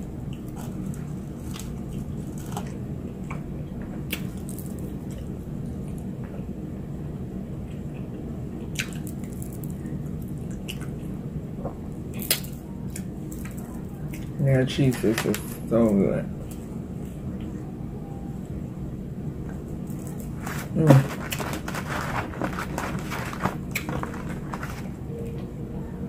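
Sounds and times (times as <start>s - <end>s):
chewing mouth sounds: 7.7s - 9.5s, 10.3s - 11.1s.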